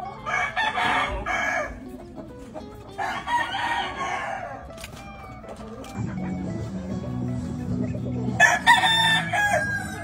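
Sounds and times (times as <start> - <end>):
rooster crowing: 8.4 - 10.0.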